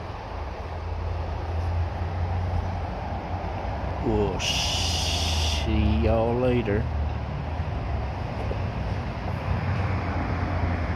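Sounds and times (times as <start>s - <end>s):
outdoor background hiss: 0.0s - 10.9s.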